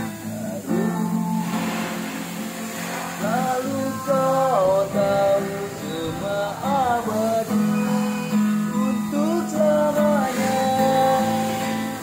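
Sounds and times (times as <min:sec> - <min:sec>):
acoustic guitar strummed: 0:00.0 - 0:12.0
man singing: 0:00.0 - 0:12.0.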